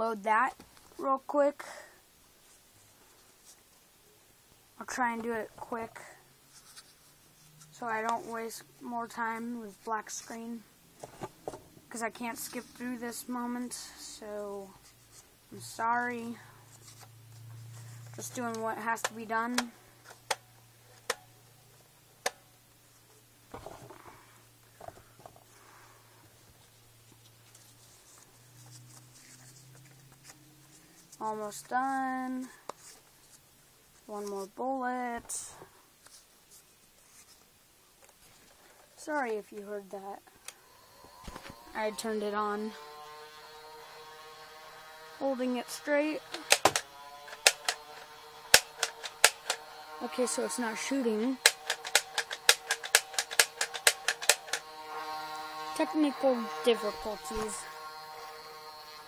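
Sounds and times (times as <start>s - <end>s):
rustling and handling: 2.3s - 13.7s, 14.4s - 15.4s, 16.2s - 22.2s, 22.8s - 34.6s, 35.4s - 41.7s, 46.3s - 55.1s
flywheel motor humming: 40.3s - 59.0s
toy blaster clicks: 46.2s - 58.2s.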